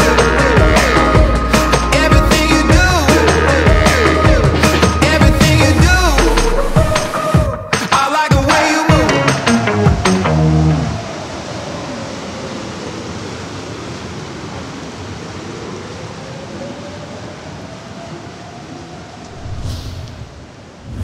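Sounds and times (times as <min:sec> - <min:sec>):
brief whoosh: 0:19.2 - 0:21.0
steady wash of noise: 0:19.2 - 0:21.0.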